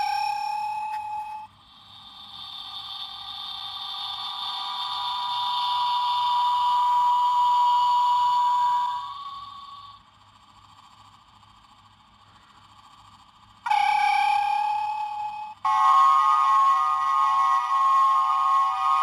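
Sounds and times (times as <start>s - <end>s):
brief electronic tone: 0.0s - 1.6s
shimmering electronic whine: 0.0s - 10.0s, 13.6s - 19.0s.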